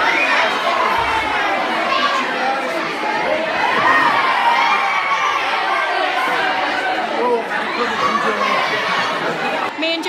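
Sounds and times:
crowd of children cheering: 0.0 - 9.7.

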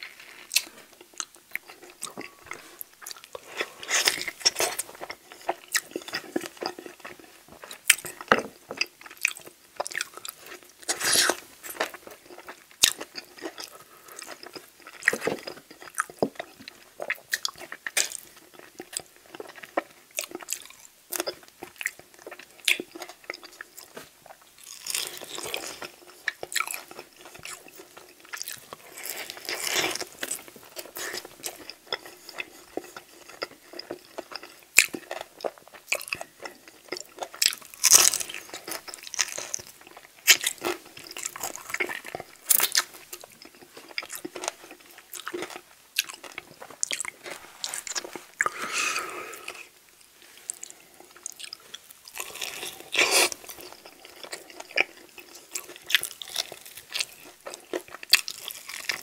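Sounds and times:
wet chewing and lip smacks: 50.5 - 59.0.

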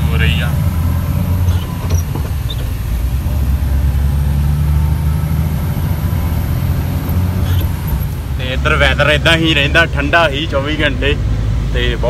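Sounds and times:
road noise: 0.0 - 12.0
truck engine drone: 0.0 - 12.0.

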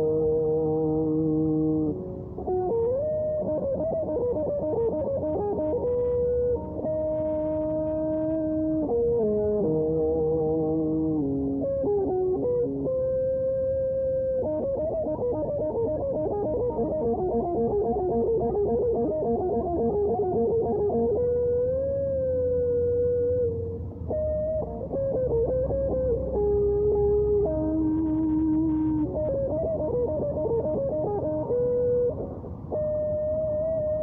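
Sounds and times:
electric guitar lead melody: 0.0 - 34.0.

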